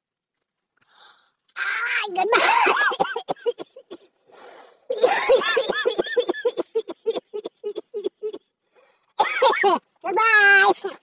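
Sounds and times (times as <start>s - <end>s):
breath in: 0.8s - 1.4s, 4.2s - 4.9s, 8.6s - 9.2s.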